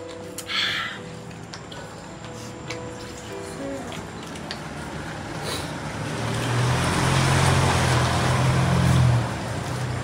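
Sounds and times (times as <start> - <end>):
road noise: 0.0 - 10.0
vehicle engine hum: 1.1 - 10.0.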